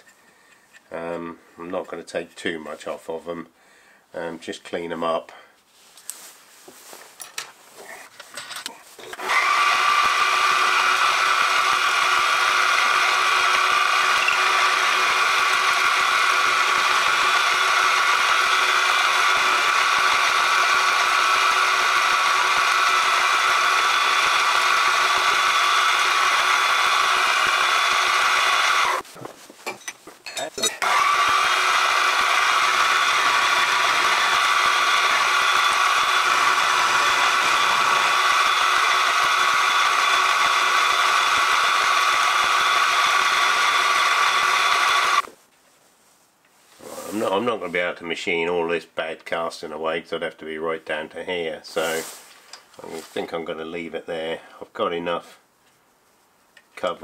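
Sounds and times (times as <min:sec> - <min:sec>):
milling machine cutting metal: 0:09.1 - 0:29.0, 0:30.7 - 0:45.3.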